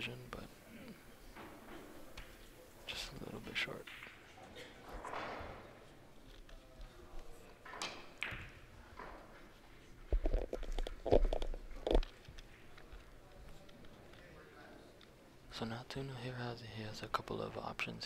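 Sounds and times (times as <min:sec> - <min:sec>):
indistinct talk in a hall: 0:00.0 - 0:10.2, 0:11.6 - 0:18.0.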